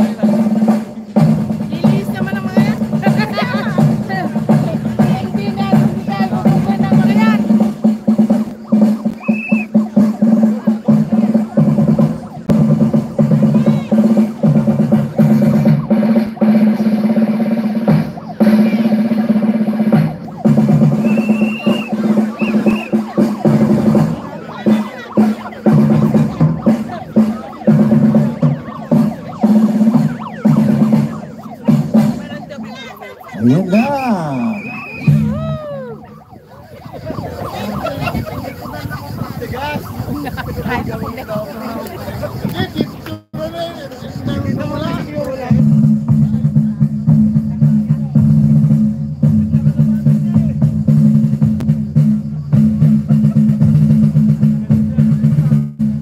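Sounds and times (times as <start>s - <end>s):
snare drum rolls: 0.0s - 43.4s, 44.9s - 56.0s
bass drum beats: 0.0s - 43.5s, 44.1s - 56.0s
drum-heavy music: 0.0s - 43.5s, 44.3s - 56.0s
crowd voices: 0.0s - 50.8s.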